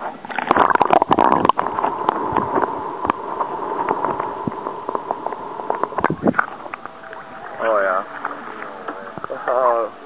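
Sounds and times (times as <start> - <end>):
muffled water splashing: 0.0 - 10.0
underwater hum: 0.0 - 10.0
small underwater clicks: 0.2 - 7.3.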